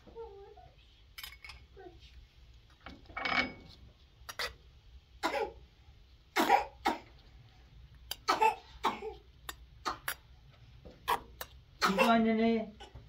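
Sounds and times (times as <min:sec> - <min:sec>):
person coughing: 0:11.1 - 0:12.2.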